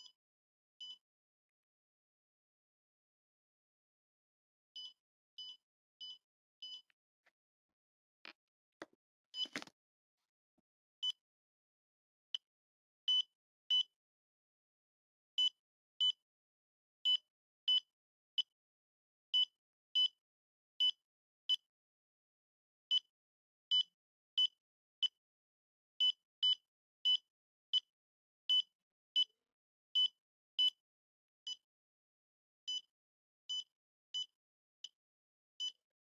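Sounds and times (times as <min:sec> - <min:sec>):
pulse oximeter beeping: 0:04.8 - 0:06.9.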